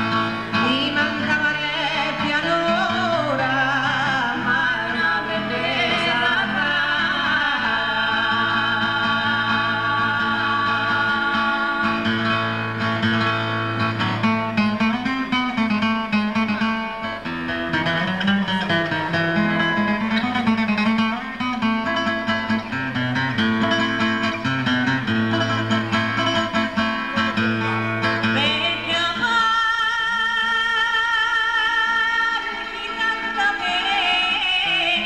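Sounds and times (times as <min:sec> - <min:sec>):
acoustic guitar: 0:00.0 - 0:35.0
woman singing with vibrato: 0:00.2 - 0:12.8, 0:27.7 - 0:35.0
women singing folk song: 0:00.5 - 0:12.7, 0:28.2 - 0:35.0.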